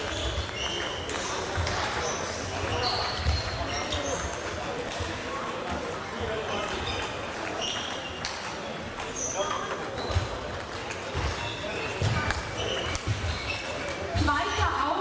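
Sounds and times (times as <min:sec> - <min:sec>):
shoes squeaking on floor: 0:00.0 - 0:14.7.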